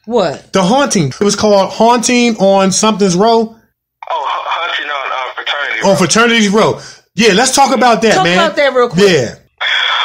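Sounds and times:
person's voice over telephone: 0:04.0 - 0:06.0, 0:08.0 - 0:08.6, 0:09.6 - 0:10.0.

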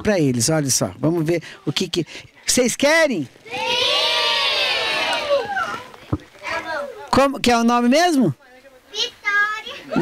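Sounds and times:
children calling out together: 0:03.4 - 0:07.1, 0:08.9 - 0:10.0.

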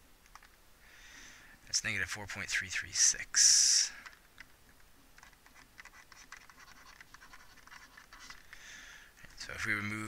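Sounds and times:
stylus scratching on tablet: 0:05.2 - 0:08.5.

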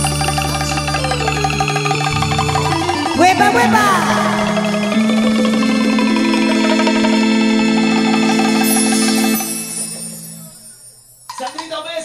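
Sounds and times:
live band instrumental: 0:00.0 - 0:10.4.

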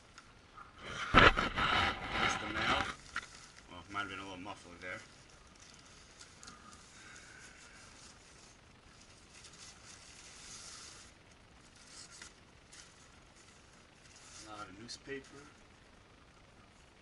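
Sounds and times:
soft ticks and scrapes: 0:00.0 - 0:17.0.

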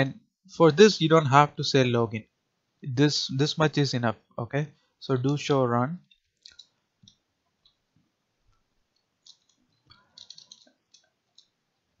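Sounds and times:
computer keyboard key clicks: 0:10.2 - 0:11.5.

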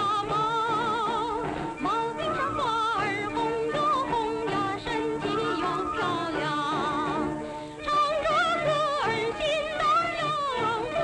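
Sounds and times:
instrumental accompaniment: 0:00.0 - 0:11.0
woman singing with vibrato: 0:00.0 - 0:11.0.

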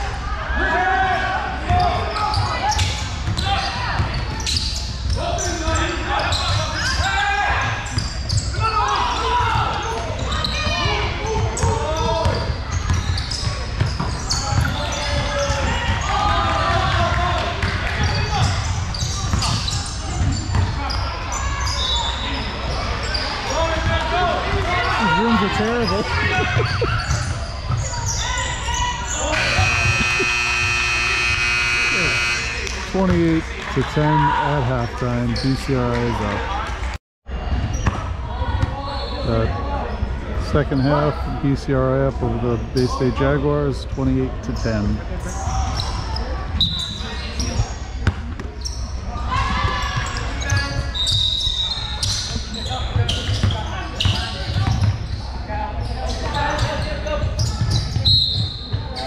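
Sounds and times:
voices echoing in a gym: 0:00.0 - 0:59.0
scoreboard buzzer: 0:29.2 - 0:33.0
basketball dribbling: 0:29.3 - 0:33.2.

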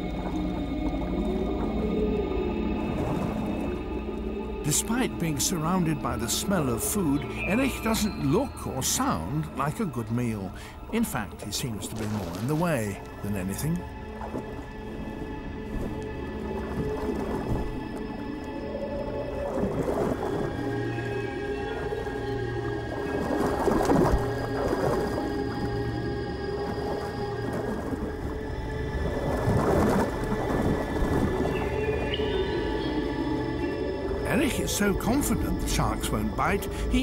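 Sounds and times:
sustained held tones: 0:00.0 - 0:11.9.

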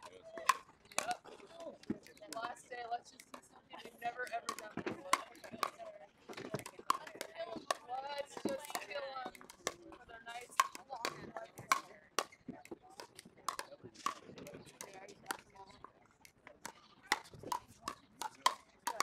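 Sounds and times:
paddles striking ball: 0:00.0 - 0:02.6, 0:04.0 - 0:19.0.

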